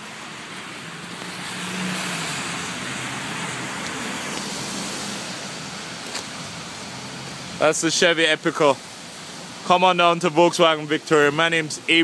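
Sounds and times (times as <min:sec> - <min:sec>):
tyre hiss on wet pavement: 0:00.0 - 0:09.7.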